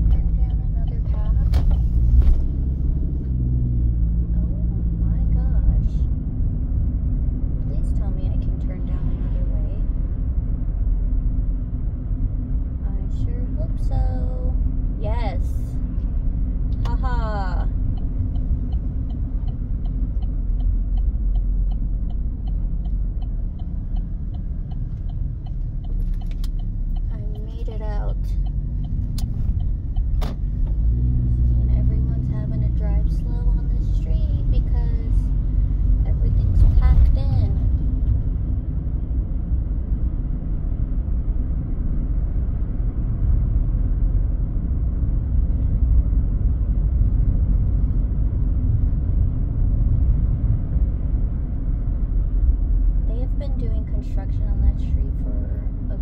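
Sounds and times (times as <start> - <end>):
car interior road rumble: 0.0 - 56.0.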